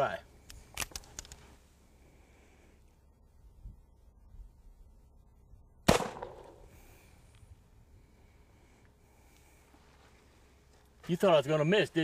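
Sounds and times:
revolver shot with echo: 5.9s - 6.7s.

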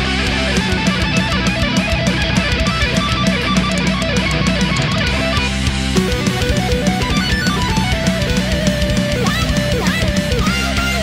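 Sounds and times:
instrumental metal band music: 0.0s - 11.0s.

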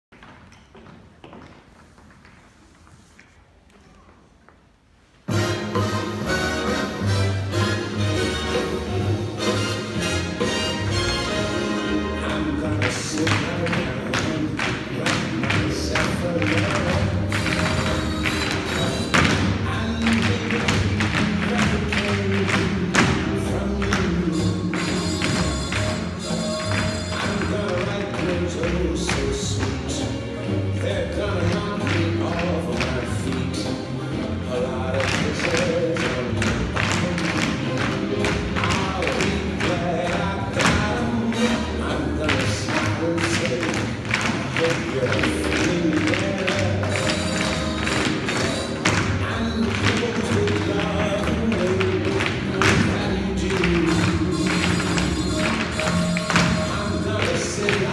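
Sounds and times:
tap shoes on stage floor: 0.1s - 4.6s, 10.4s - 57.9s
backing music: 5.2s - 57.9s
song with singing: 5.3s - 57.9s.

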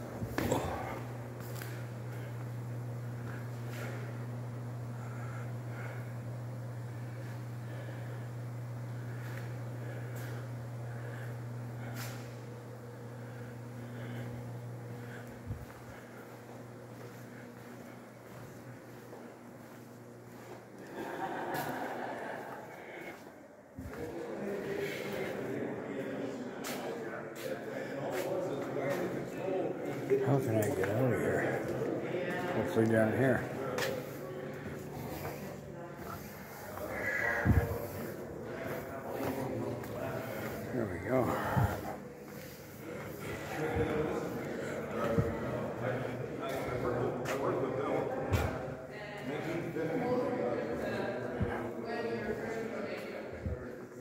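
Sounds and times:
footsteps: 0.0s - 7.5s, 8.8s - 25.5s, 26.1s - 48.7s
indistinct voices echoing: 0.0s - 54.0s
indistinct voices talking: 23.8s - 48.6s.

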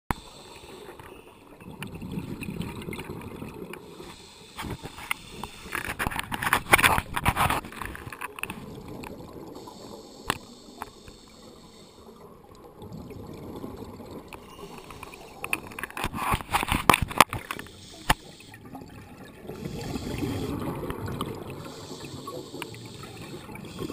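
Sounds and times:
hissing inhale through regulator: 0.1s - 1.6s, 3.8s - 6.3s, 9.5s - 12.4s, 14.3s - 18.8s, 19.5s - 23.9s
bubbling exhale underwater: 1.6s - 5.0s, 12.2s - 16.4s, 17.1s - 23.9s.

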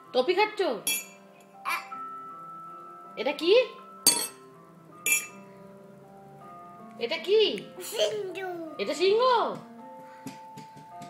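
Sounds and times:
metal spoon clinking glass mug: 0.9s - 1.2s, 4.1s - 4.4s, 5.1s - 5.4s.

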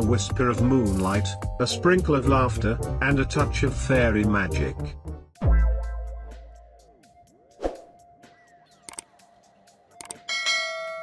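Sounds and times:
mouse clicks: 8.8s - 9.1s, 10.0s - 10.2s
bell-like chime: 10.3s - 11.0s.

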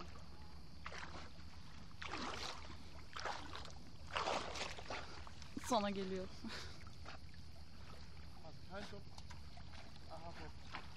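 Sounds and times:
shallow water splashing: 0.0s - 10.9s.

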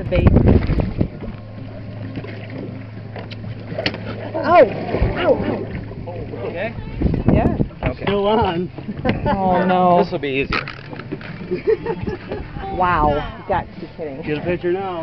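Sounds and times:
wind on microphone: 0.0s - 1.8s, 2.4s - 9.6s
boat motor idling: 0.0s - 15.0s
microphone handling noise: 0.2s - 1.4s.

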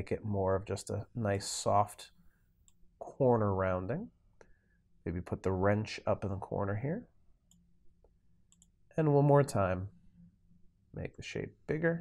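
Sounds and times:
computer mouse clicks: 7.5s - 8.8s.

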